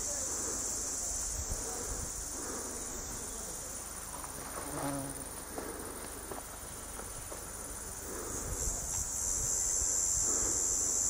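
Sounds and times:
cicadas buzzing: 0.0 - 11.0.

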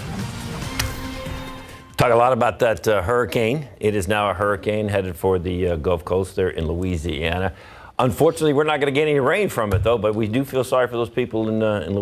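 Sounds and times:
television ident music: 0.0 - 2.4.

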